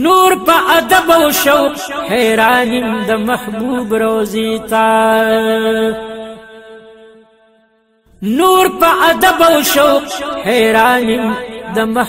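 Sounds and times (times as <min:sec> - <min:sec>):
solo voice singing: 0:00.0 - 0:06.9, 0:08.2 - 0:12.0.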